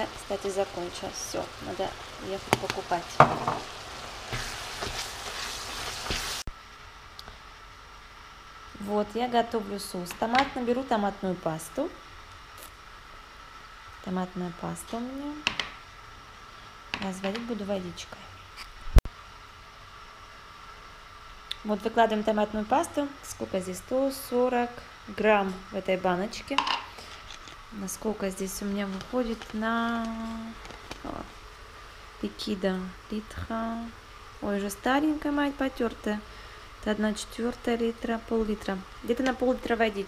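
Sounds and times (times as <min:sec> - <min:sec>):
steady faint hiss: 0:00.0 - 0:40.0.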